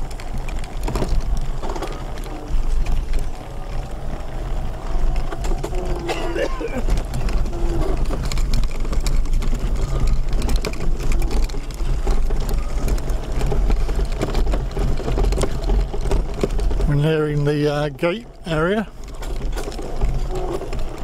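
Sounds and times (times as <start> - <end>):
wheelchair motor hum: 0.0 - 21.0
rattling and knocking: 5.0 - 21.0.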